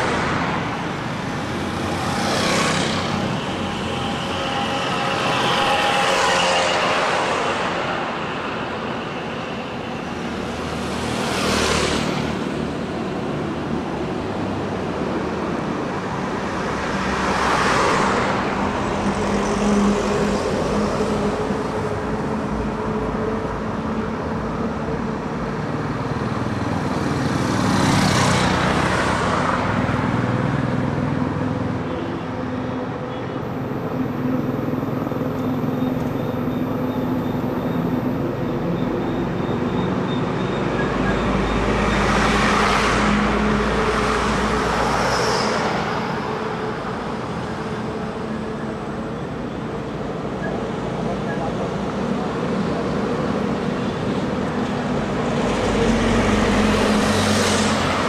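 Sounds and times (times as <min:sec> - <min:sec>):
road traffic rumble: 0:00.0 - 0:58.0
vehicles passing: 0:00.0 - 0:58.0.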